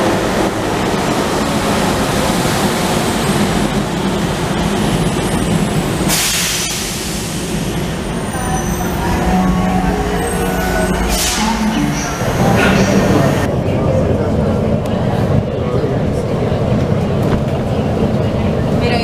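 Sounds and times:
train slowing to a stop: 0.0s - 18.7s.

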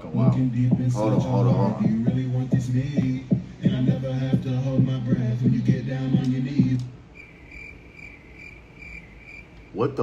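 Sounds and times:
hip-hop beat with deep bass: 0.0s - 7.0s
cricket chirping: 7.1s - 9.8s.

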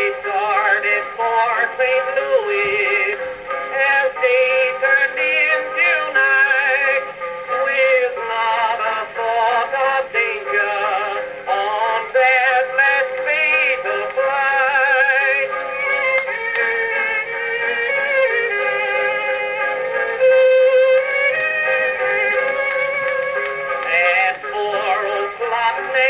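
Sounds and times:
instrumental accompaniment: 0.0s - 26.0s
man singing with vibrato: 0.0s - 26.0s.

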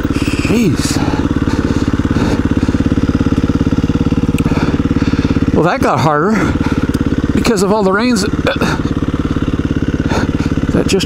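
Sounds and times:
dirt bike engine running: 0.0s - 11.0s.

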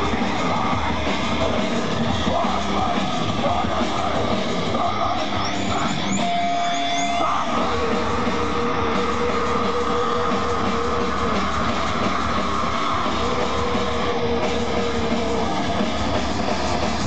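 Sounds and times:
distorted electric guitar: 0.0s - 17.0s.

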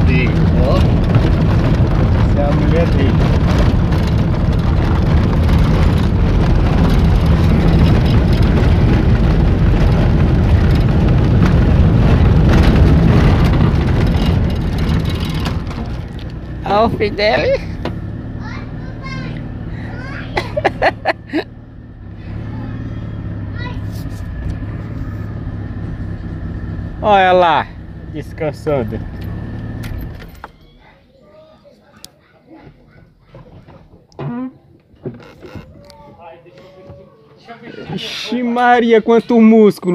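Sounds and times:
car rumbling over cobblestones: 0.0s - 30.8s.

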